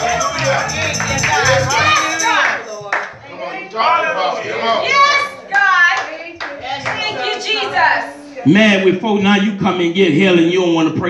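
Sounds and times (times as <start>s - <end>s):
congregation clapping: 0.0s - 3.2s
voices calling out in praise: 0.0s - 8.8s.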